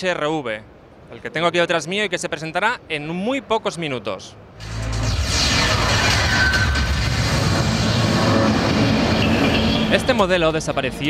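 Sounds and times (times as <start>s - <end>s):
deep steady rumble: 4.6s - 11.0s.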